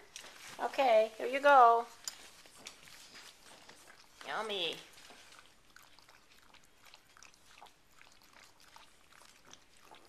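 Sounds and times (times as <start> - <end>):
dog chewing food: 1.9 - 10.0.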